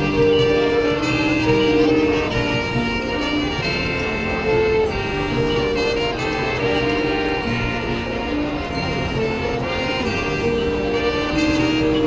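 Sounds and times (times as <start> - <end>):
marching band playing held chords: 0.0 - 12.0.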